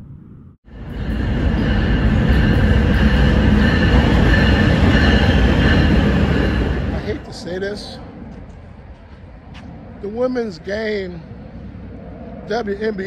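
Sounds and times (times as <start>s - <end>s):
train rumbling: 0.0s - 13.0s.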